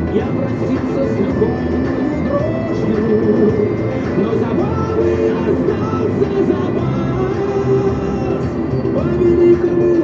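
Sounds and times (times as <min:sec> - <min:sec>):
car low rumble: 0:00.0 - 0:10.0
car radio music: 0:00.0 - 0:10.0.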